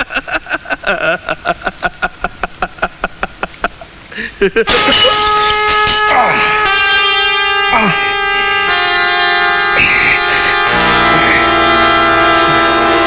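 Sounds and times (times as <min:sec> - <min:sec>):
man laughing: 0:00.0 - 0:08.8, 0:09.8 - 0:11.5, 0:12.3 - 0:13.0
sustained musical chord: 0:08.1 - 0:13.0.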